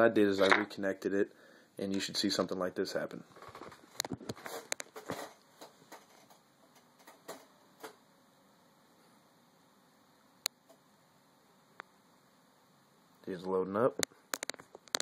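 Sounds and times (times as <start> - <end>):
faint clicks and taps: 13.9 - 15.0.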